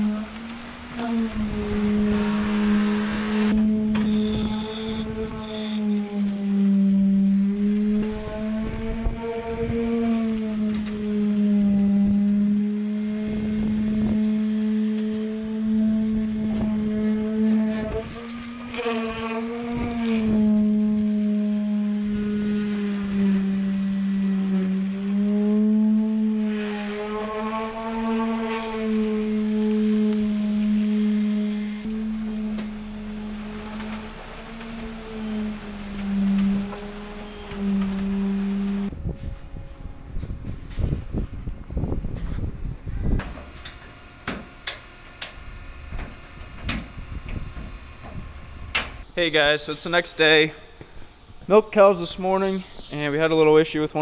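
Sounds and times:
motor humming: 0.0 - 49.1.

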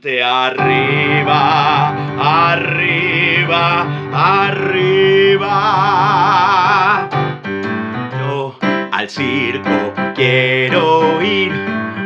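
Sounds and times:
piano keyboard music: 0.3 - 12.0.

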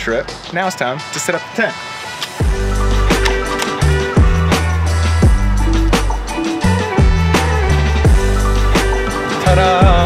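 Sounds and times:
sharp clicks: 3.1 - 3.8.

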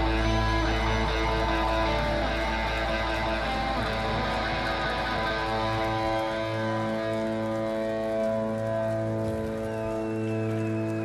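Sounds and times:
bass guitar: 0.0 - 11.0
electric guitars sustained chords: 0.0 - 11.0.

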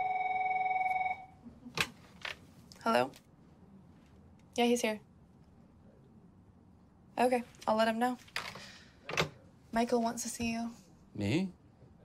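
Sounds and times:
telephone ringing: 0.0 - 1.4.

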